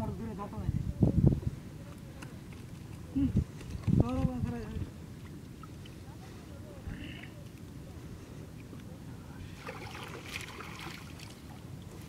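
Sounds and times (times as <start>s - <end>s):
low wind rumble: 0.0s - 12.0s
water splashing and dripping: 9.6s - 12.0s.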